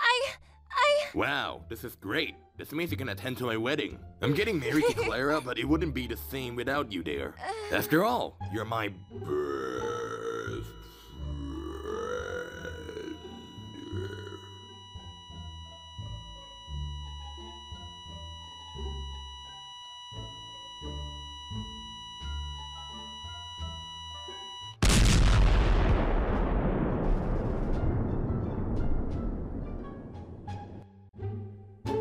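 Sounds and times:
thin high ringing tone: 0:09.3 - 0:24.8
huge explosion blast: 0:24.8 - 0:30.7
deep rumble: 0:24.8 - 0:30.8.

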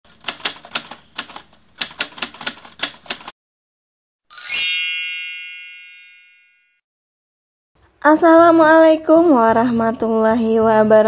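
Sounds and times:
typewriter keystrokes: 0:00.1 - 0:03.3.

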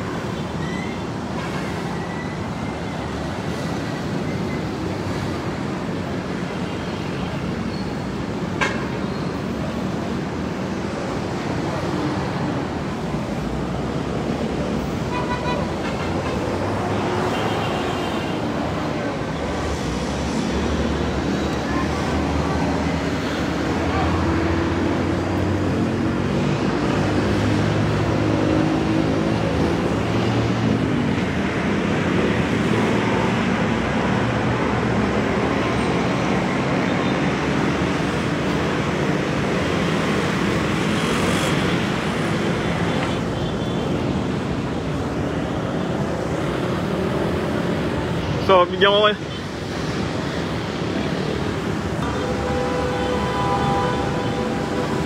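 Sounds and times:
city street traffic: 0:00.0 - 0:55.0.

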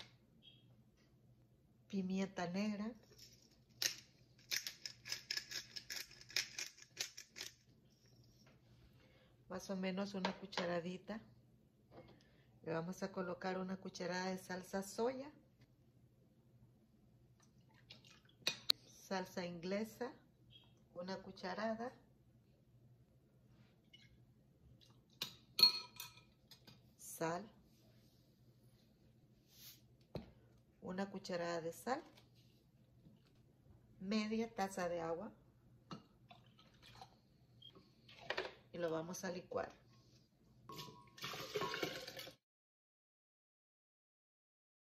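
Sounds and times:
kitchenware clinking: 0:25.2 - 0:26.8, 0:40.7 - 0:42.3.

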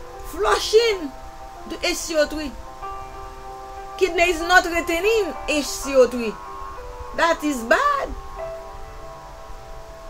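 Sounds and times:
soft chime-like music: 0:00.0 - 0:10.0.

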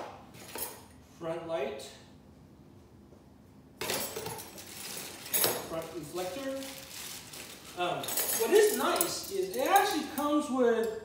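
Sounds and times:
plastic packaging rustling: 0:04.1 - 0:09.2.

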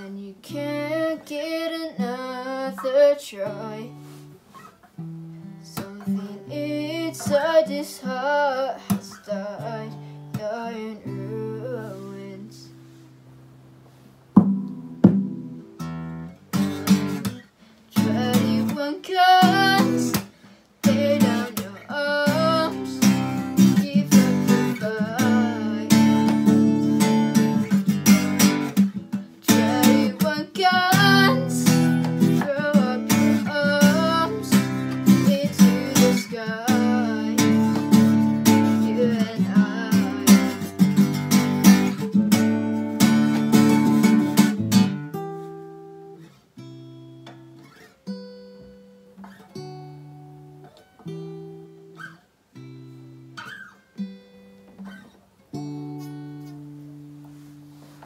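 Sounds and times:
acoustic guitar strumming: 0:00.0 - 0:58.0.

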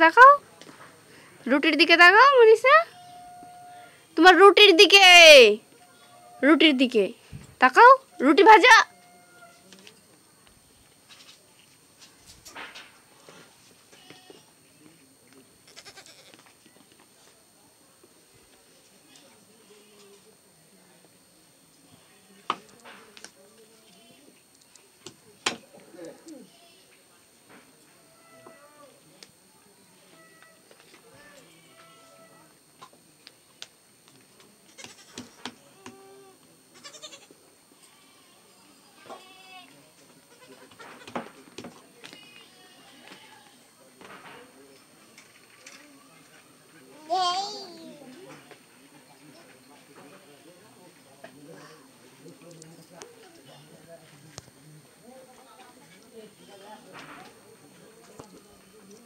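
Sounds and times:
bleat-like calls: 0:15.7 - 0:16.4, 0:28.0 - 0:28.9, 0:35.9 - 0:39.7.

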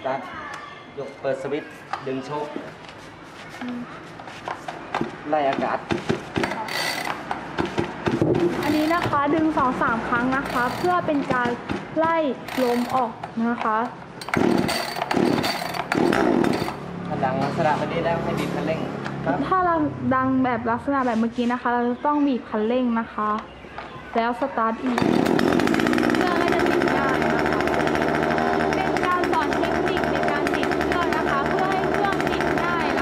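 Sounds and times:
chainsaw recoil starter pulls: 0:06.4 - 0:07.3, 0:08.6 - 0:09.1, 0:10.4 - 0:11.0, 0:12.4 - 0:13.1, 0:14.2 - 0:16.8, 0:25.0 - 0:33.0.

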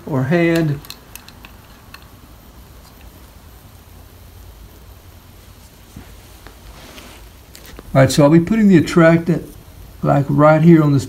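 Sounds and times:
room hiss: 0:00.0 - 0:11.0
rat trap clicks and taps: 0:00.5 - 0:02.1.

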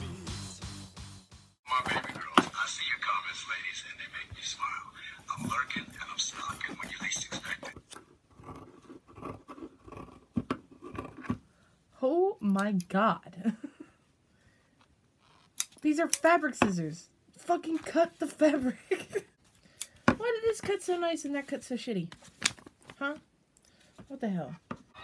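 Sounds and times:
music: 0:00.0 - 0:01.6
person speaking: 0:01.7 - 0:07.8.

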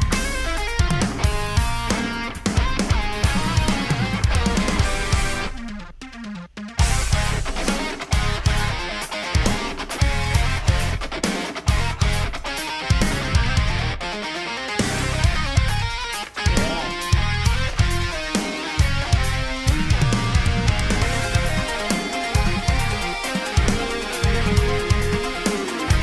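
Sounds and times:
progressive metal music: 0:00.0 - 0:26.0.

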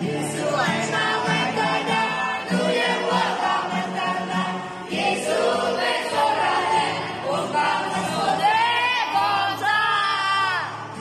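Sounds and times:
group of teenagers singing: 0:00.0 - 0:11.0.

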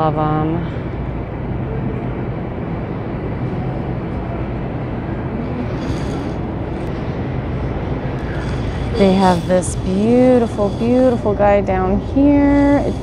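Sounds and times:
store background rumble and hiss: 0:00.0 - 0:13.0.

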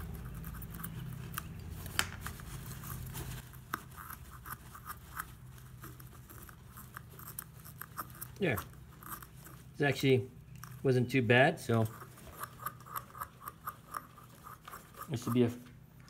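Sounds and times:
razor blade scraping plastic: 0:11.9 - 0:15.6.

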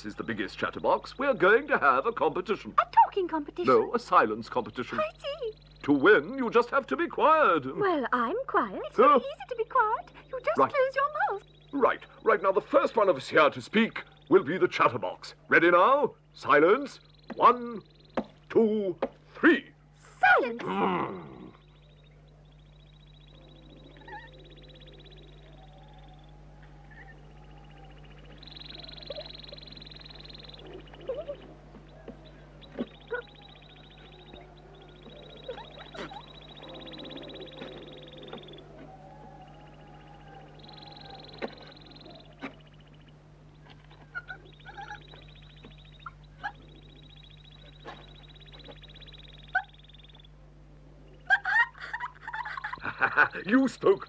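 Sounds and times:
high drawn-out bird-like calls: 0:00.0 - 0:50.4, 0:51.0 - 0:54.0
steady electrical hum: 0:00.0 - 0:54.0
person laughing: 0:20.6 - 0:21.6, 0:31.0 - 0:31.5, 0:51.3 - 0:53.6.

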